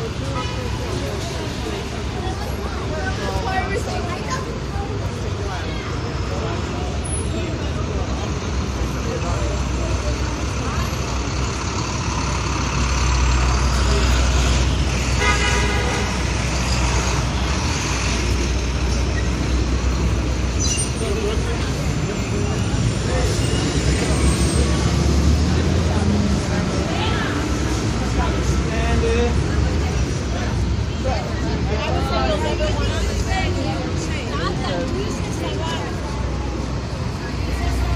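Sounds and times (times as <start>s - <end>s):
city traffic: 0.0s - 37.9s
vehicle horn: 15.2s - 16.2s.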